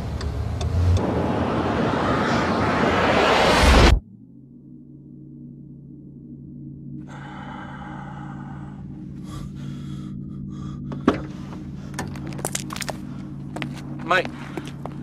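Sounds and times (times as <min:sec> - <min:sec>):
low soundtrack drone: 0:00.0 - 0:15.0.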